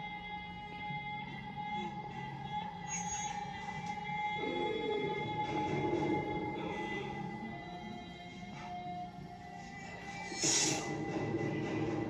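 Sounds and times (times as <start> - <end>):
film score music through tv speaker: 0.0 - 12.0
wavering voice-like melody: 1.4 - 8.3.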